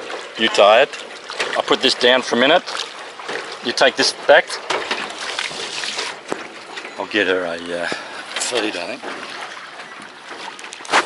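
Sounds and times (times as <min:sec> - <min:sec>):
water sloshing around rowboat: 0:00.0 - 0:11.0.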